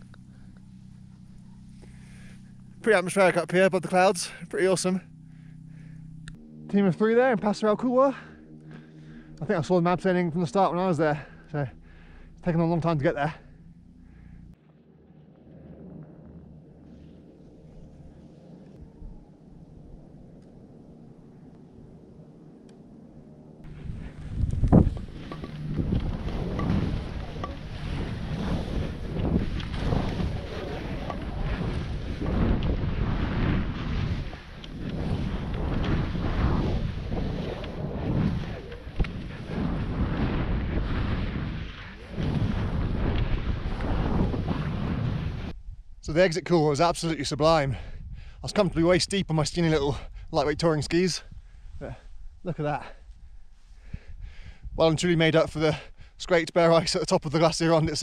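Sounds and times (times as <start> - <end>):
faint low hum: 0.0 - 46.2
wind rushing over microphone: 23.6 - 55.4
skis hissing through snow: 23.7 - 45.5.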